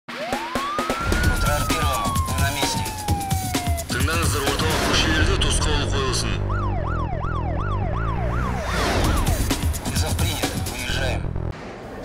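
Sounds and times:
siren wail: 0.1 - 9.4
title music: 0.1 - 11.6
pulsing bass beat: 0.4 - 11.5.

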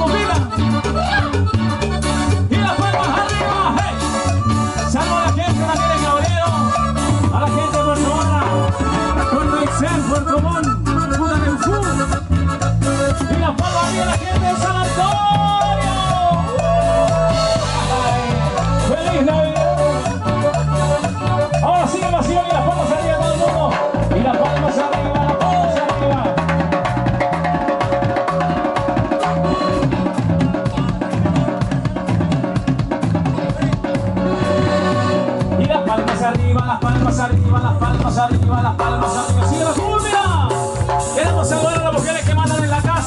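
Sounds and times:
bass and drums beat: 0.0 - 43.0
electric guitar: 0.0 - 43.0
latin dance band playing: 0.0 - 43.0.

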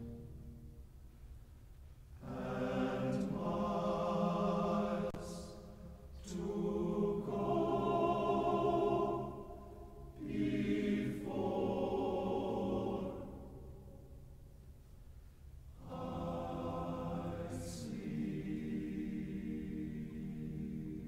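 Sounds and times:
boys' choir singing chords: 2.2 - 14.1, 15.8 - 21.0.

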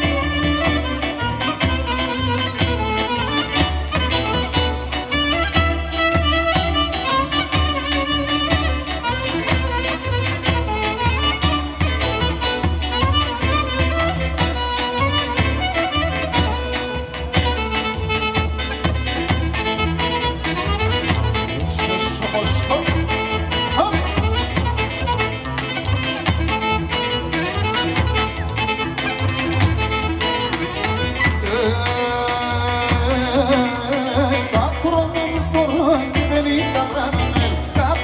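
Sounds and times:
clarinet melody: 0.0 - 38.0
drum beating: 0.0 - 38.0
keyboards: 0.0 - 38.0.

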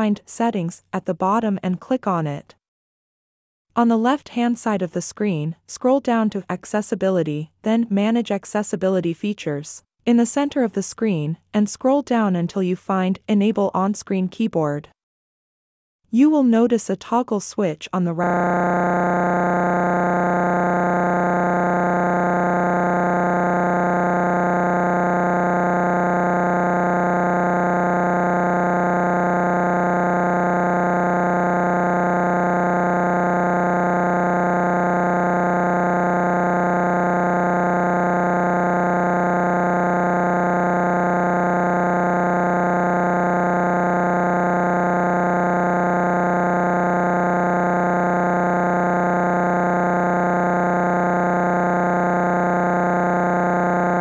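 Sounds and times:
low electronic buzz: 18.2 - 54.0.

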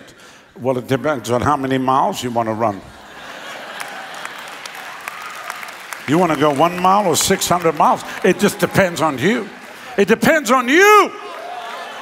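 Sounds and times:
congregation applauding: 3.2 - 12.0.

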